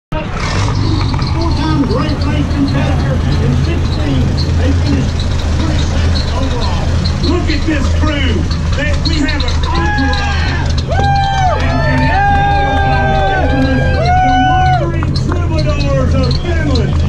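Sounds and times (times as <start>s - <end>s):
large engine running low: 0.1s - 17.0s
voices: 0.1s - 17.0s.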